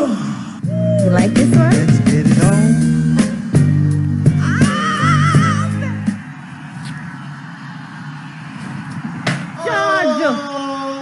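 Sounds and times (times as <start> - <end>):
music with heavy bass beat: 0.6 - 7.5
wavering high tone: 2.7 - 9.9.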